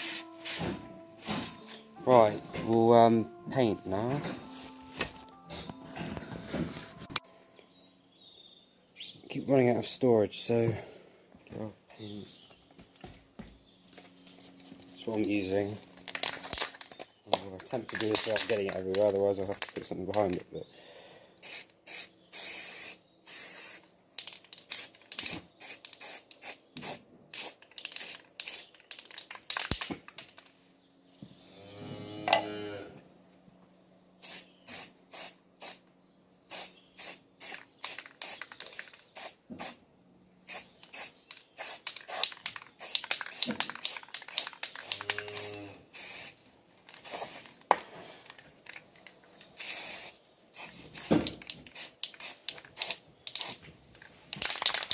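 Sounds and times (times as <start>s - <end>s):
spray can hissing bursts: 0.0s - 0.7s, 21.4s - 23.9s, 24.6s - 29.7s, 34.2s - 35.8s, 36.5s - 39.8s, 40.5s - 47.6s, 49.6s - 53.6s.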